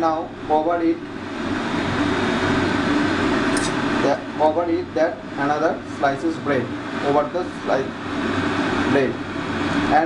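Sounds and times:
fan whirring: 0.0s - 10.0s
low electrical hum: 0.0s - 10.0s.

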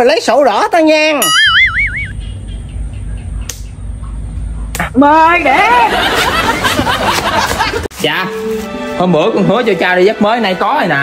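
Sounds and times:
wobbling cartoon tone: 1.2s - 2.4s
low outdoor rumble: 1.8s - 7.9s.

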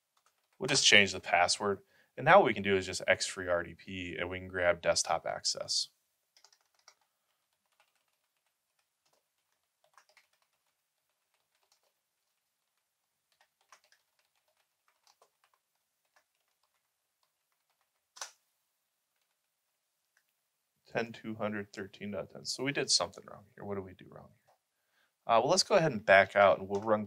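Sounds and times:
keyboard typing: 0.0s - 0.8s, 6.3s - 18.4s, 19.1s - 19.5s.

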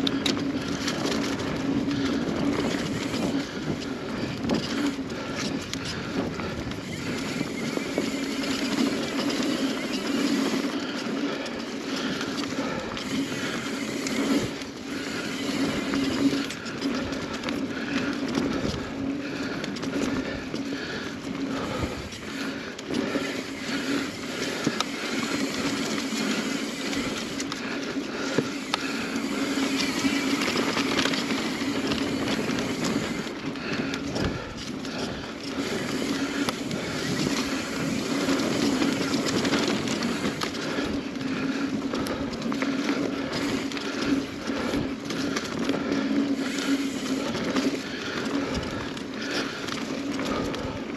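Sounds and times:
bike knocking and rattling: 0.0s - 50.9s
bike tyres on dirt and leaves: 0.0s - 50.9s.

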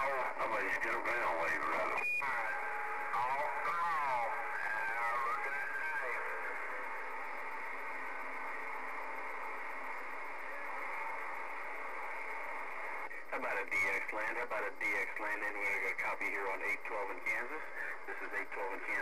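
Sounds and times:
radio static hiss: 0.0s - 19.0s.

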